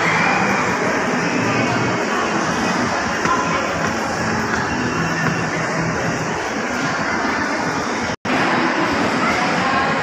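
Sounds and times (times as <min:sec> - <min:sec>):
hum of busy mall: 0:00.0 - 0:10.0.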